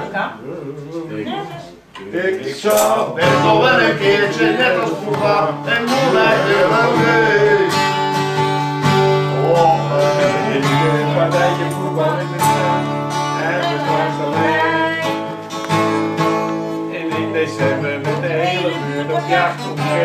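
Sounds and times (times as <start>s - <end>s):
acoustic guitars strumming chords: 0.0s - 20.0s.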